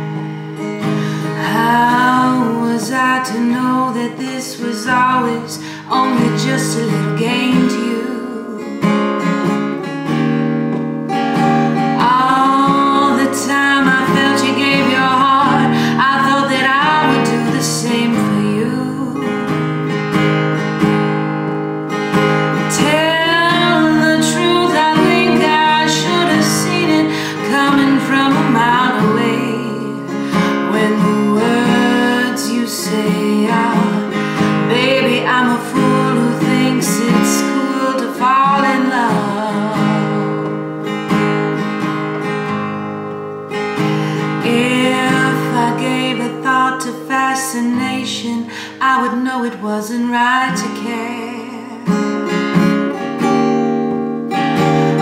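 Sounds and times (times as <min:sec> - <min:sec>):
acoustic guitar: 0:00.0 - 0:55.0
woman singing jazz: 0:01.3 - 0:08.8, 0:11.9 - 0:19.5, 0:22.7 - 0:40.4, 0:44.4 - 0:52.1.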